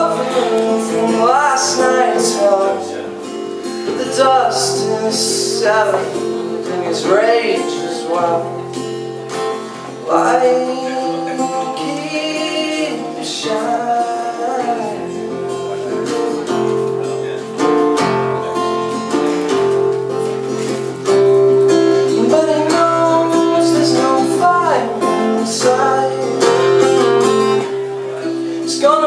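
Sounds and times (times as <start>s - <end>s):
man singing: 0.0s - 19.7s, 21.0s - 29.0s
acoustic guitar strumming: 0.0s - 29.0s.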